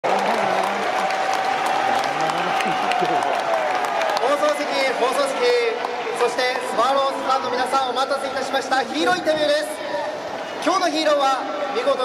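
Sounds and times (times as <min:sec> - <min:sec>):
crowd applauding: 0:00.0 - 0:08.2
crowd voices: 0:00.0 - 0:12.0.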